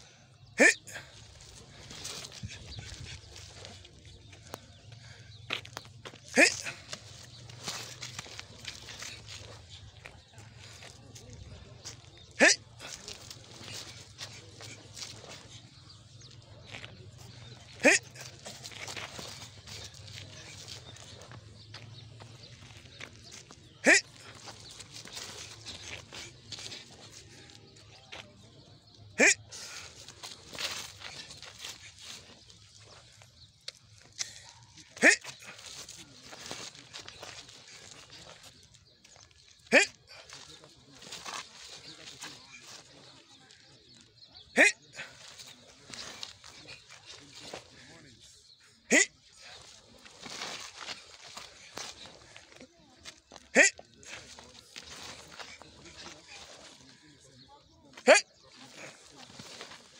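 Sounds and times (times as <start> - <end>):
low voices: 0.0 - 59.9.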